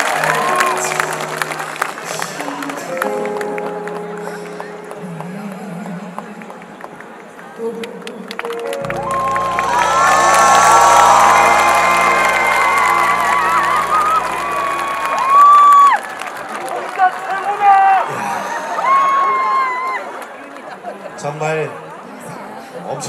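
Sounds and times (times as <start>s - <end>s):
crowd cheering and clapping: 0.0s - 4.9s, 6.4s - 21.0s
backing track final chord: 8.6s - 15.7s
shrill shouts: 9.4s - 16.0s.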